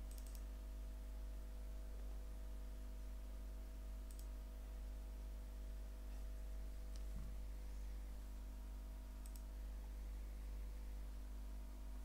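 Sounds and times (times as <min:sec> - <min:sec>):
low electrical hum: 0:00.0 - 0:12.0
computer mouse button clicks: 0:04.1 - 0:04.3, 0:09.2 - 0:09.4.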